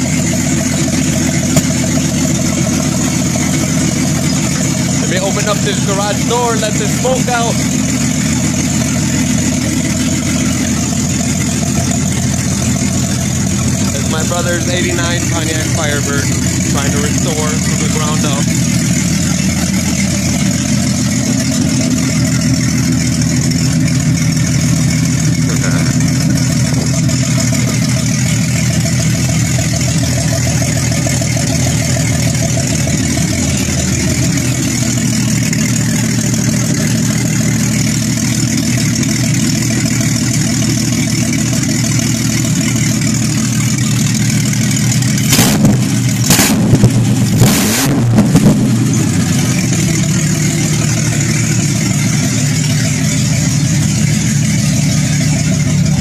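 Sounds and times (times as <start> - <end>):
car engine idling: 0.0 - 56.0
engine revving bursts: 45.2 - 52.5.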